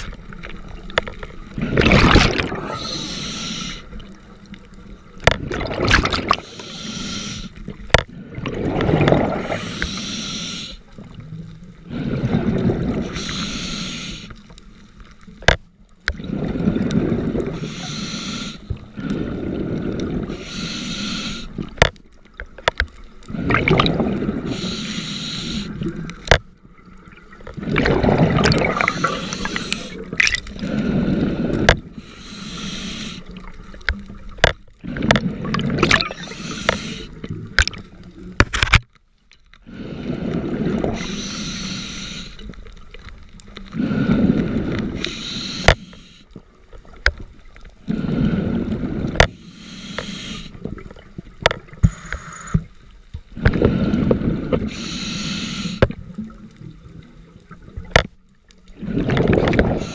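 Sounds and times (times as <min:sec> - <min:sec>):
bubbling exhale: 0:01.6 - 0:04.0, 0:05.4 - 0:10.8, 0:23.3 - 0:26.0, 0:27.6 - 0:33.5, 0:34.8 - 0:37.3
hissing regulator inhale: 0:02.6 - 0:04.0, 0:06.4 - 0:07.6, 0:09.4 - 0:10.9, 0:11.9 - 0:14.4, 0:17.5 - 0:21.7, 0:24.3 - 0:25.9, 0:28.7 - 0:33.4, 0:36.2 - 0:37.3, 0:39.7 - 0:42.6, 0:43.7 - 0:46.4, 0:47.9 - 0:50.7, 0:51.8 - 0:52.7, 0:53.4 - 0:56.0.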